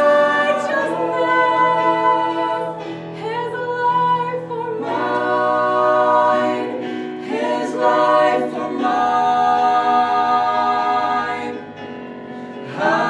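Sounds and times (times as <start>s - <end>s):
vocal trio singing in harmony: 0.0s - 13.0s.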